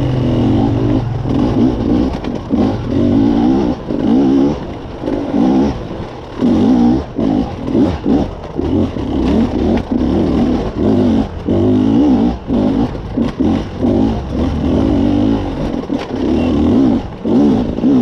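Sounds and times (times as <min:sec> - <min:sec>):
motorcycle engine revving: 0:00.0 - 0:18.0.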